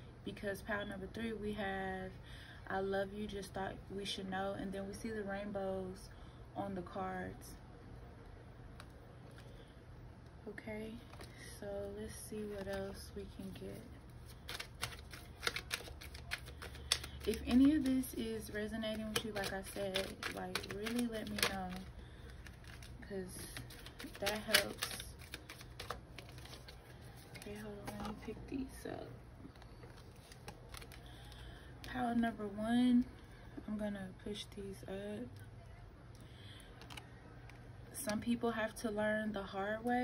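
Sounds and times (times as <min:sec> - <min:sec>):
low steady hum: 0:00.0 - 0:40.0
cards being shuffled: 0:12.4 - 0:28.3, 0:29.5 - 0:31.9.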